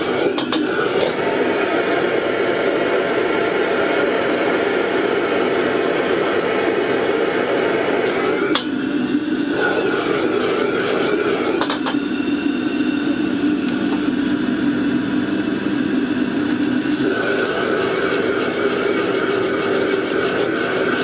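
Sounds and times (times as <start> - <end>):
food sizzling: 0.0 - 21.0
gas burner roaring: 0.0 - 21.0
metal clank on wok: 11.6 - 12.0.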